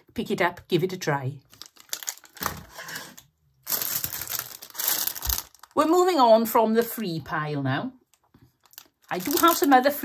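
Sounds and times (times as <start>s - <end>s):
plastic packaging crinkling: 1.4s - 6.1s, 8.1s - 10.0s.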